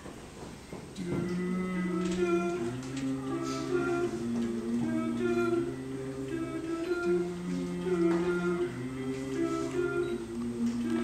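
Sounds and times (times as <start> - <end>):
men humming in harmony: 1.0 - 11.0.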